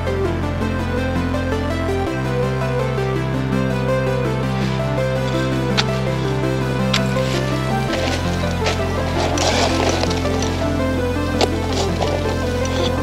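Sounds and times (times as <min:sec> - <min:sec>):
electronic music: 0:00.0 - 0:13.0.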